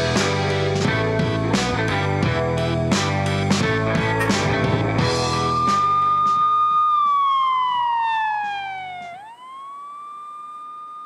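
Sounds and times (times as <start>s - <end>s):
rock music: 0.0s - 5.8s
siren-like whining tone: 4.2s - 11.0s.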